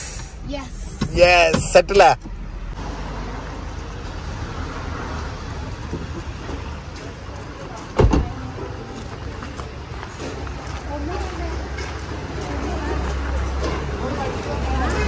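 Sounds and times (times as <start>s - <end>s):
street noise: 0.0s - 15.0s
car door thud: 8.0s - 8.4s.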